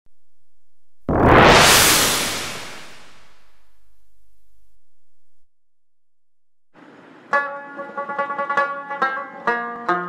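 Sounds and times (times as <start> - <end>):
noise swell: 0.1 - 5.5
low rumble: 0.1 - 5.6.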